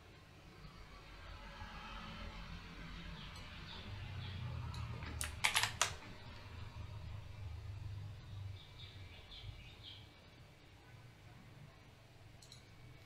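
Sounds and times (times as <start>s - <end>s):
faint room hum: 0.0s - 13.0s
keyboard keys clicking: 5.2s - 6.0s.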